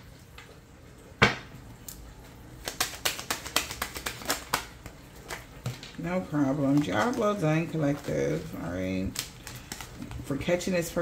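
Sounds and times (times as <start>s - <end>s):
cards being shuffled: 2.6s - 5.9s.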